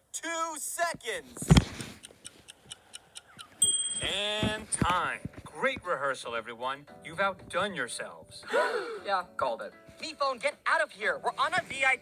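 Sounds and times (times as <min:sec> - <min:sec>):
quick timer ticking: 0:01.9 - 0:04.4.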